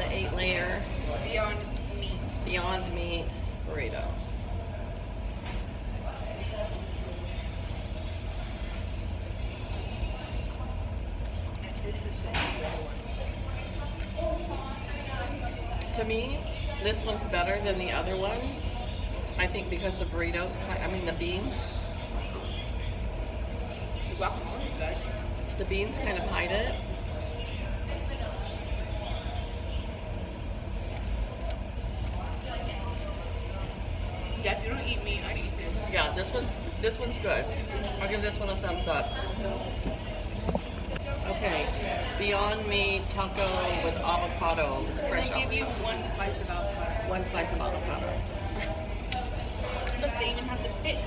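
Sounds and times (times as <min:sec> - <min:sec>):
faint voices: 0:00.0 - 0:51.0
low room rumble: 0:00.0 - 0:51.0.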